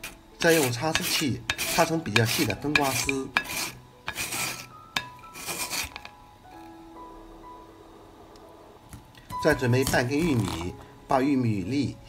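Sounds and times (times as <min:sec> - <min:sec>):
melon rasping on metal grater: 0:00.0 - 0:06.1, 0:09.5 - 0:10.8.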